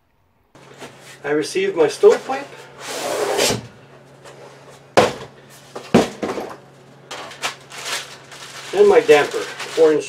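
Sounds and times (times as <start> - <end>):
pipe scraping in cardboard box: 2.0 - 3.7.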